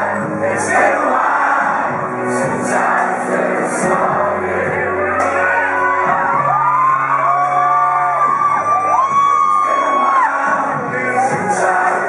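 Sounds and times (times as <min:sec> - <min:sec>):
acoustic guitar music: 0:00.0 - 0:12.0
crowd whooping and yelling: 0:04.8 - 0:12.0.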